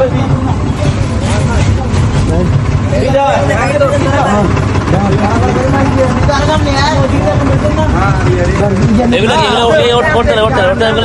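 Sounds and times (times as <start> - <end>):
motor vehicle rumble: 0.0 - 11.0
people talking: 0.0 - 11.0.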